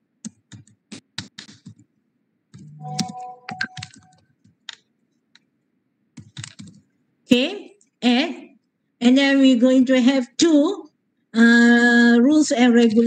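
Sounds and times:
computer keyboard typing: 0.3 - 1.8, 2.6 - 4.8, 6.2 - 6.8
brief steady tone: 2.6 - 4.2.

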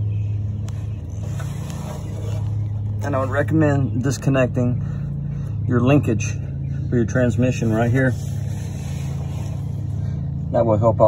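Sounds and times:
motor humming: 0.0 - 10.6.

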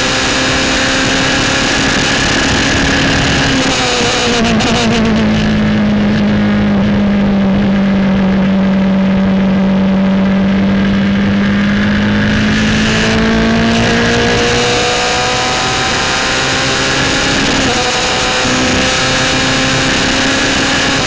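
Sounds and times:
race car engine revving: 0.0 - 21.0.

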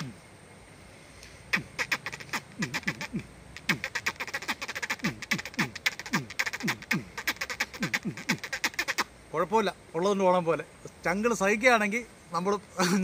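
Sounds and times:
man imitating animal call: 0.0 - 0.2, 1.5 - 9.1.

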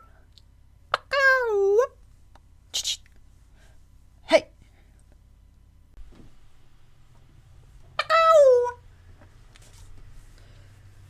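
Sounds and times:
woman imitating cat meow: 8.0 - 8.8.

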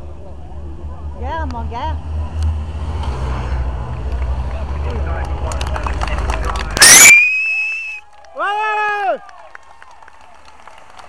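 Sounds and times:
motorcycles riding past: 0.1 - 6.8.

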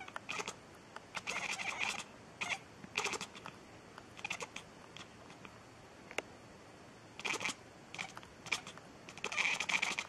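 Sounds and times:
cat meowing: 0.0 - 0.6, 1.2 - 3.4, 4.2 - 4.6, 7.2 - 10.0.

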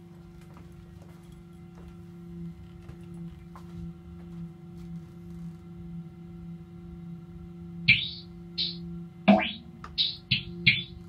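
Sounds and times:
low electric guitar drone: 1.3 - 11.0
loud high chirp: 7.9 - 11.0.

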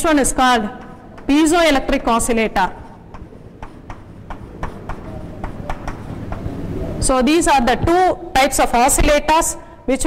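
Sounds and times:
low room hum: 0.0 - 10.0
chalk writing on chalkboard: 3.0 - 6.5.

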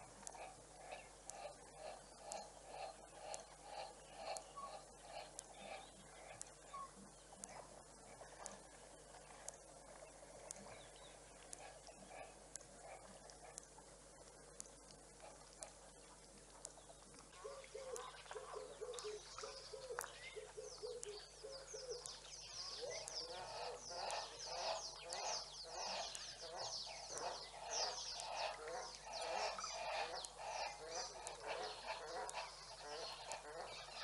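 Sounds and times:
birds calling: 0.0 - 13.7, 16.7 - 34.0.

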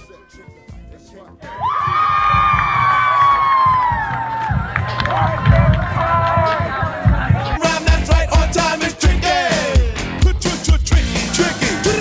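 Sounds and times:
low music thumps: 0.0 - 11.1
crowd cheering and shouting: 1.4 - 12.0.

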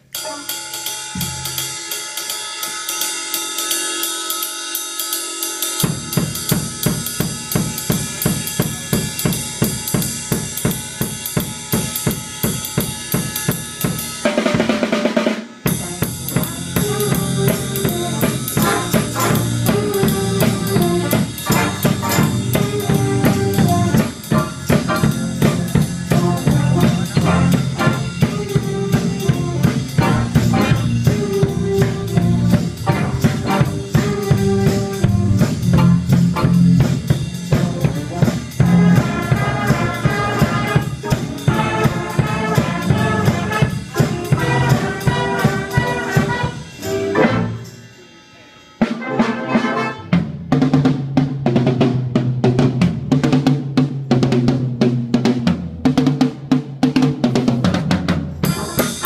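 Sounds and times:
jazz band playing: 0.0 - 4.6, 5.2 - 53.2, 56.4 - 59.0
saxophones: 0.0 - 9.3, 15.5 - 50.2, 58.4 - 59.0
drum kit beat: 0.0 - 59.0
low bass notes: 16.1 - 43.5.

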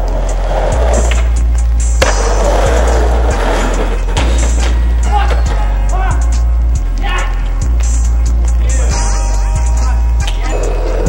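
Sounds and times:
skateboard wheels rolling on pavement: 0.0 - 6.9
loud music with bass line: 0.0 - 11.0.

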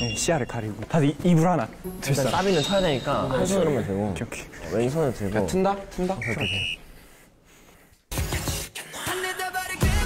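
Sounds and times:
two-tone electronic beep: 0.0 - 0.5.

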